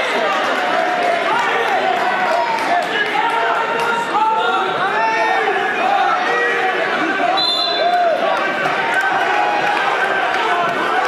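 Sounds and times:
crowd shouting and talking: 0.0s - 11.0s
referee's whistle blast: 7.4s - 8.0s.

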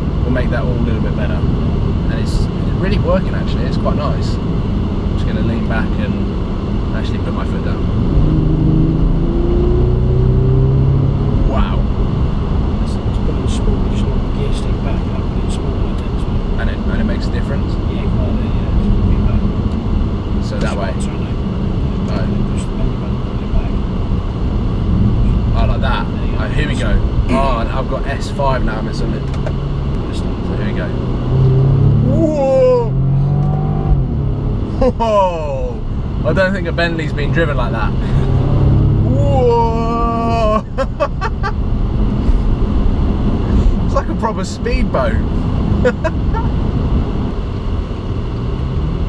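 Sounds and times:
car engine under full throttle: 0.0s - 49.0s
road noise: 0.0s - 49.0s.

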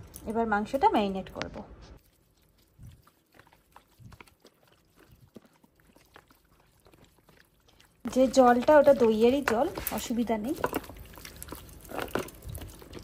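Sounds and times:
wet squelching of mixing meat: 1.9s - 13.0s.

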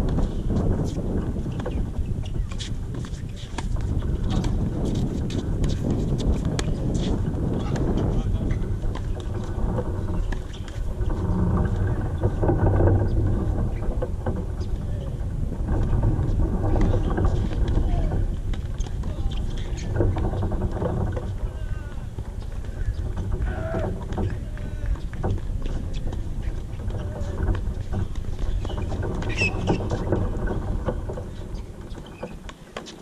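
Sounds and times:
wind rumble on microphone: 0.0s - 33.0s.

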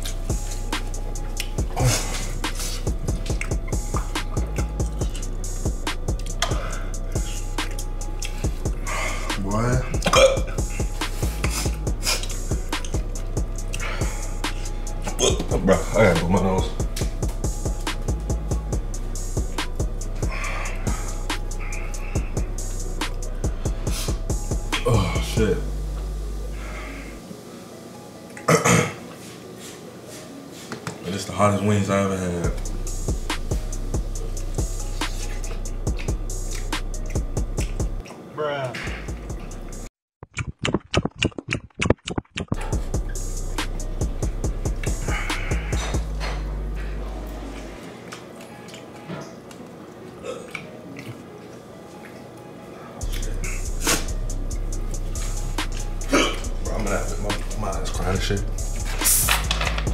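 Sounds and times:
deep bass: 0.0s - 27.2s, 32.5s - 38.0s, 42.6s - 47.6s, 53.0s - 59.9s
hip hop background music: 0.0s - 39.9s, 42.4s - 59.9s
man burping: 10.0s - 10.6s, 15.1s - 15.6s, 28.4s - 29.0s, 50.2s - 50.7s, 56.0s - 56.5s
quick hi-hat ticks: 53.1s - 56.6s.

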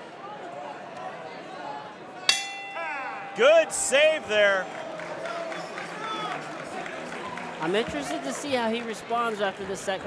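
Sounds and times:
murmur of crowd voices: 0.0s - 10.0s
bell ringing: 2.3s - 4.8s.

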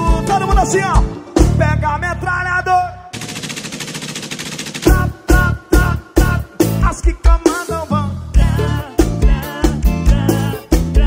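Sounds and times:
pop song: 0.0s - 2.8s, 4.8s - 11.0s
machine-gun fire: 3.1s - 5.4s.

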